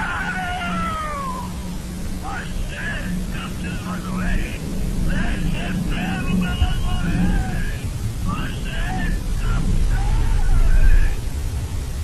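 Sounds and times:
high wailing cry: 0.0 - 1.9, 8.4 - 11.2
steady low hum: 0.0 - 12.0.

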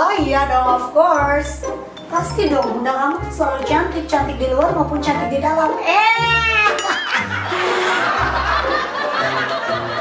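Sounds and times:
laughter: 6.9 - 10.0.

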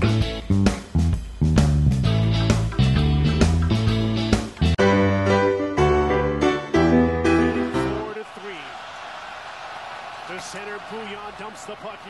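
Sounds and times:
background music: 0.0 - 8.6
commentator's voice: 7.5 - 8.8, 10.2 - 12.0
arena crowd noise: 7.6 - 12.0.

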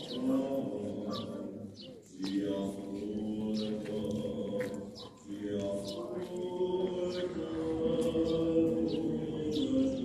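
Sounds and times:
church chanting: 0.0 - 10.0
bird chirps: 1.1 - 2.5.

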